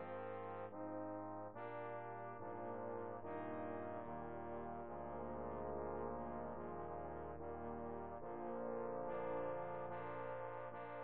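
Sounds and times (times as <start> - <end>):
trombones playing sustained chords: 0.0 - 11.0.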